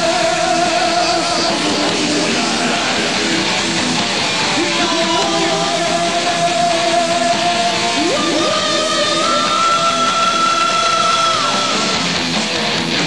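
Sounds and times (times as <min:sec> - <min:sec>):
distorted electric guitars: 0:00.0 - 0:13.0
drum kit: 0:00.0 - 0:13.0.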